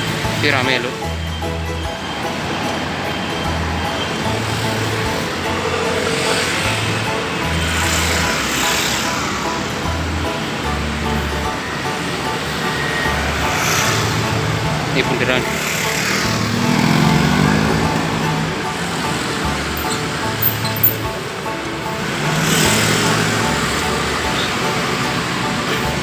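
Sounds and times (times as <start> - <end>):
street traffic noise: 0.0 - 26.0
vehicles passing close by: 0.0 - 26.0.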